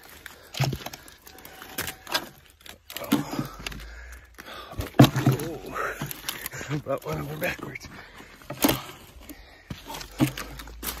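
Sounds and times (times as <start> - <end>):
brush crackling underfoot: 0.0 - 11.0
man breathing hard and grunting: 0.2 - 5.0.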